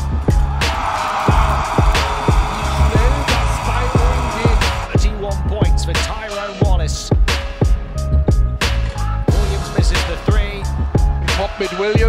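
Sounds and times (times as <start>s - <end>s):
hip-hop music with deep bass: 0.0s - 12.0s.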